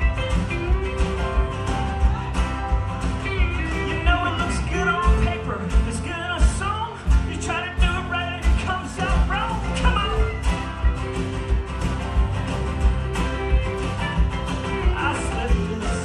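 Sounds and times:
country-rock band playing: 0.0s - 16.0s
kick drum beat: 0.0s - 16.0s
man singing: 3.1s - 10.4s, 14.6s - 16.0s.

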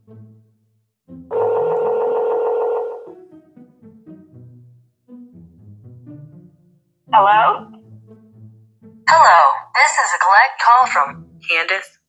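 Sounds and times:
soft background music: 0.0s - 12.0s
telephone ringback tone: 1.3s - 3.1s.

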